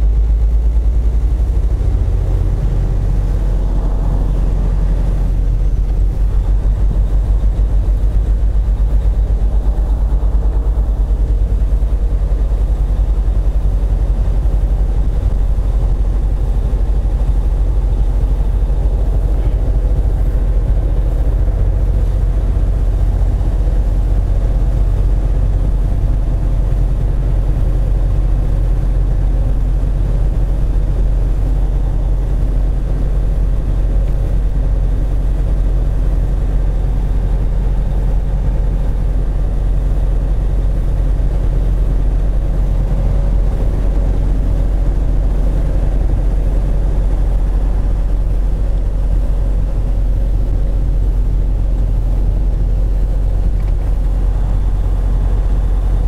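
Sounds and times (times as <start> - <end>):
tyre and road noise: 0.0 - 28.0
truck diesel engine running: 0.0 - 56.0.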